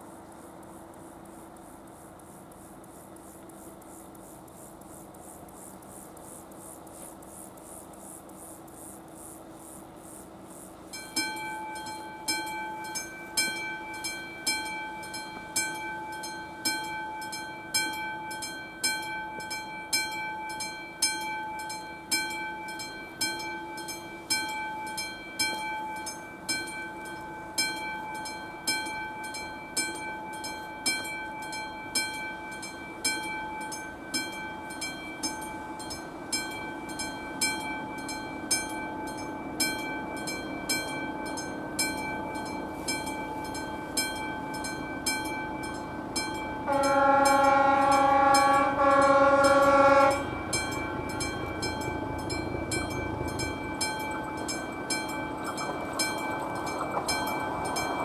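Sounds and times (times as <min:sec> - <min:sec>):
level crossing bell ringing: 0:10.9 - 0:58.0.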